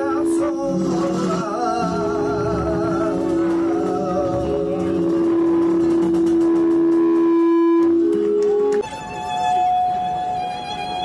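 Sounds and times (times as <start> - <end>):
flamenco fusion music: 0.0 - 10.5
high steady held note: 0.0 - 11.0
long held low note: 0.0 - 11.0.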